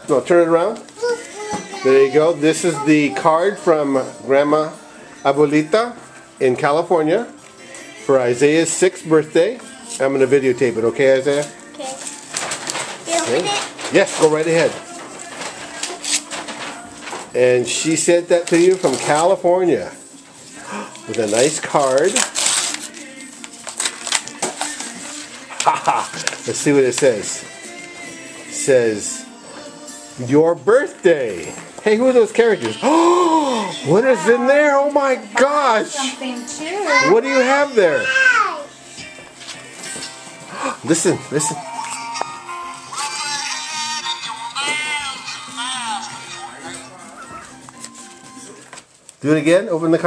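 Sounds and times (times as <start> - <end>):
birthday card sound chip song: 0.1 - 50.0
paper envelope rustling and tearing: 11.4 - 19.4, 20.8 - 27.4.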